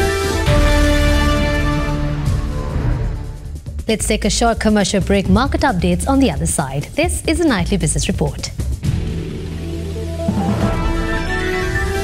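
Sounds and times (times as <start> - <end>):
synthesised news theme music: 0.0 - 12.0.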